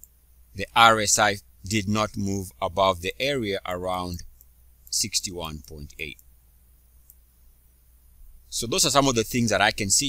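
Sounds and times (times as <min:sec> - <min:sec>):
faint steady hum: 0:00.0 - 0:10.0
mouse click: 0:04.3 - 0:04.9, 0:07.0 - 0:07.2.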